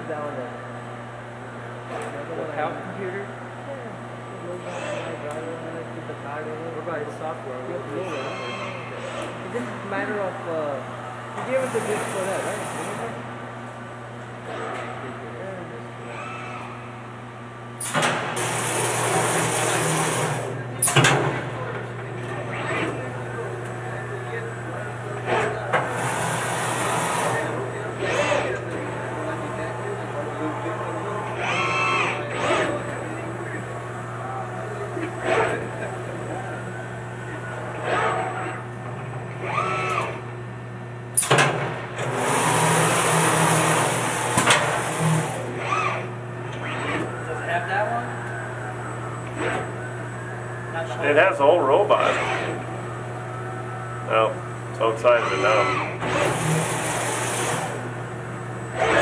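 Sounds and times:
low equipment hum: 0.0 - 59.0.

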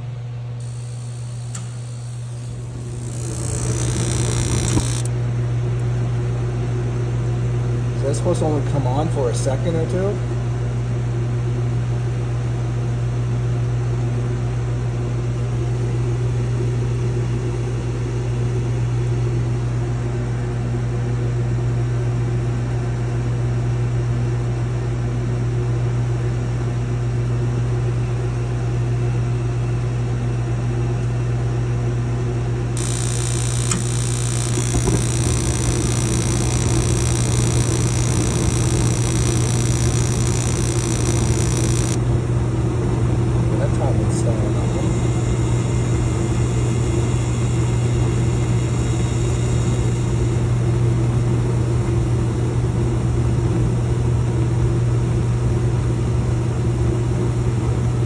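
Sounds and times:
heater blower humming: 0.0 - 5.9, 32.6 - 51.1
high gas hiss: 0.6 - 5.1, 32.8 - 42.0.

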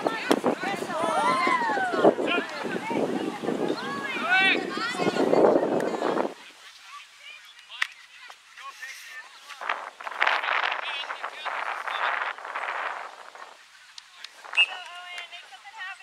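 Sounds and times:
players and spectators shouting: 0.0 - 5.4.

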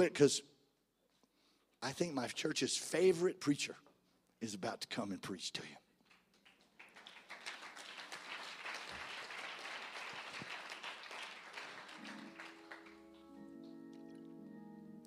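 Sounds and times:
congregation applauding: 6.0 - 14.3
sustained keyboard chords: 12.0 - 15.0.

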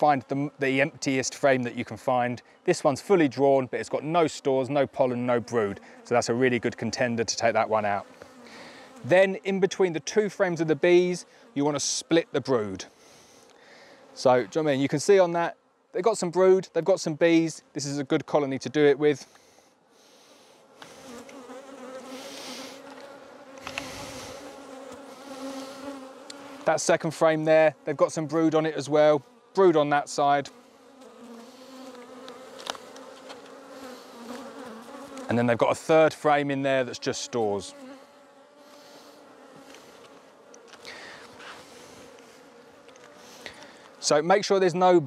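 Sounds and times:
honey bees buzzing: 0.0 - 45.0.

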